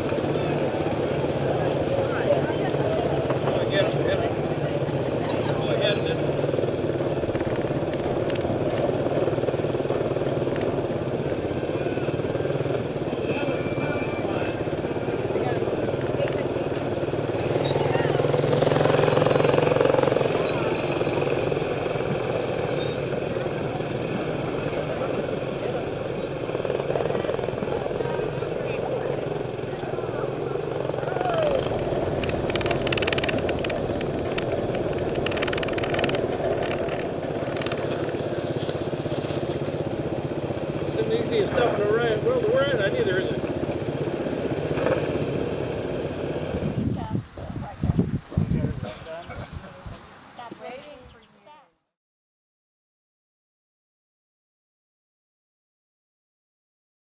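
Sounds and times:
small motorcycles engine drone: 0.0 - 49.3.

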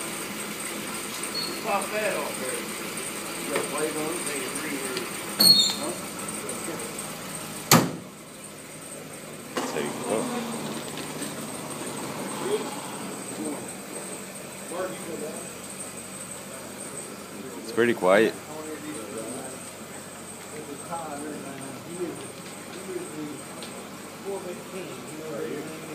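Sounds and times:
people talking: 1.5 - 2.7, 3.4 - 7.0, 9.6 - 10.7, 12.3 - 15.6, 16.4 - 23.5, 24.2 - 25.9
car hood slamming shut: 7.7 - 8.1.

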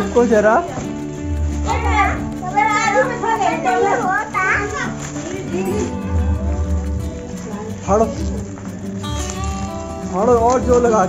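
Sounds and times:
background music: 0.0 - 11.0
children's excited voices: 0.8 - 8.6.

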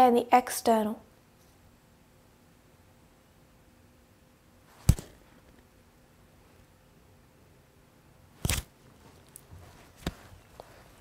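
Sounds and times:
hand thumping chest: 4.8 - 5.3.

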